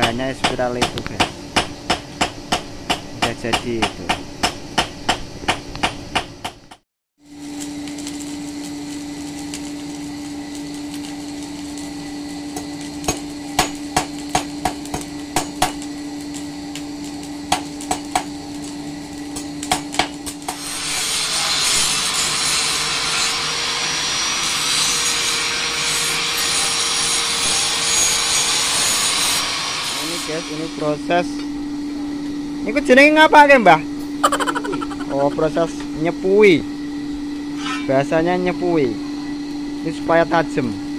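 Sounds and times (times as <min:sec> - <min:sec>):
hammer striking steel on anvil: 0:12.6 - 0:15.9
angle grinder grinding steel: 0:20.4 - 0:30.7.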